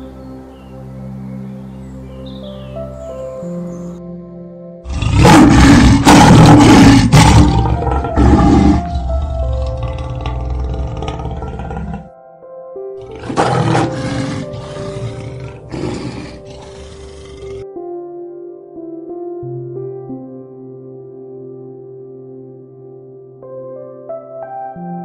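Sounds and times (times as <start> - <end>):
soft piano music: 0.0 - 25.0
lion roaring: 4.8 - 12.1, 13.0 - 17.6.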